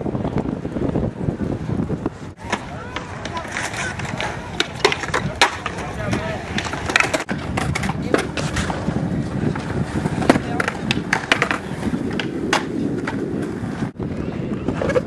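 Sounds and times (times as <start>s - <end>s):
skateboard wheels rolling on concrete: 0.0s - 15.0s
skateboards clacking: 1.4s - 15.0s
crowd voices: 2.3s - 15.0s.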